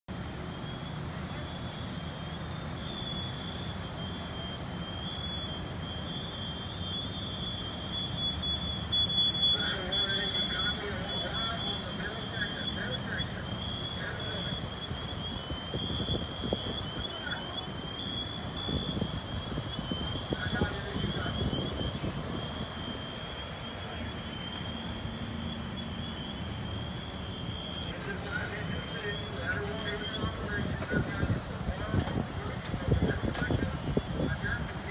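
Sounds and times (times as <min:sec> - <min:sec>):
fire engines rumbling: 0:00.1 - 0:34.9
high-pitched electronic tone: 0:00.4 - 0:30.7
faint indistinct voices: 0:09.6 - 0:22.6, 0:27.7 - 0:34.9.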